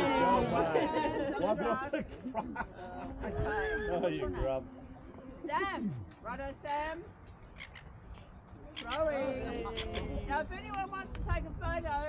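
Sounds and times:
people talking and laughing: 0.0s - 7.0s, 8.4s - 12.0s.

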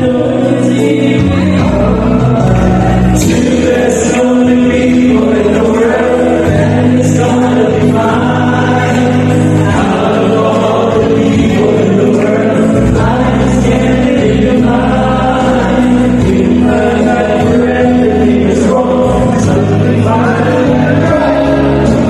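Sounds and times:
men singing over loudspeakers: 0.0s - 22.0s
musical backing with bass: 0.0s - 22.0s.

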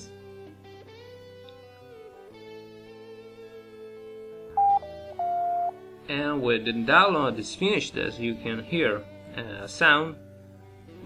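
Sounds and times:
quiet guitar music: 0.0s - 11.0s.

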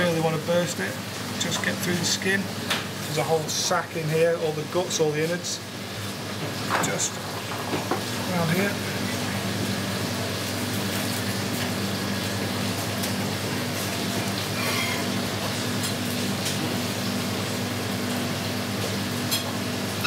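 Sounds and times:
kitchen ventilation hum and hiss: 0.0s - 20.0s.

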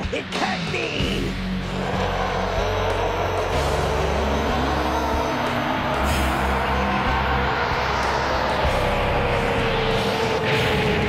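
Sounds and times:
loud rumble of energy: 1.4s - 11.0s
giant ape roaring: 1.7s - 11.0s.

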